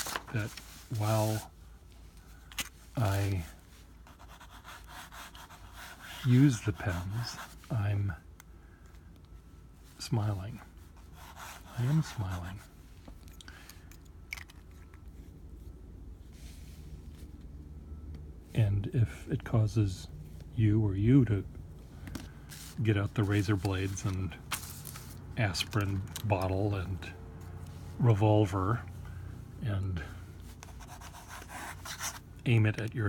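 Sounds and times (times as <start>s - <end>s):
soft paper rustle: 0.0s - 4.5s, 22.0s - 28.2s
low steady hum: 0.0s - 33.0s
pen scratching on paper: 4.1s - 7.6s, 11.0s - 12.6s, 30.6s - 32.2s.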